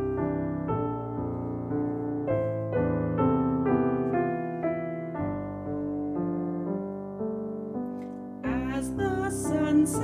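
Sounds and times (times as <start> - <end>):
slow solo piano: 0.0 - 10.0.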